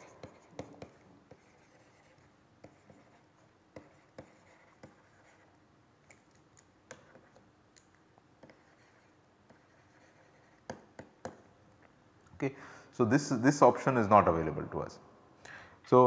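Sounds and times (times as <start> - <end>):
stylus tapping tablet screen: 0.0 - 11.5.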